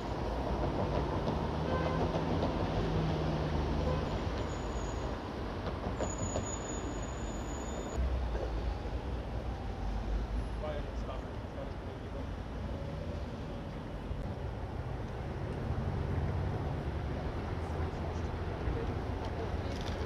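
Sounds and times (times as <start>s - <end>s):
passing vehicles: 0.0s - 20.0s.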